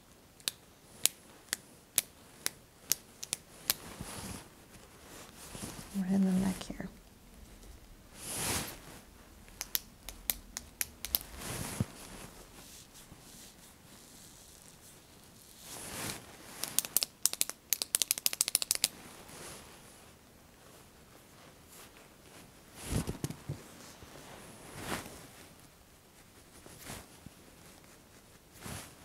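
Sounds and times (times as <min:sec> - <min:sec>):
soft rustling: 0:03.4 - 0:16.7, 0:18.8 - 0:29.0.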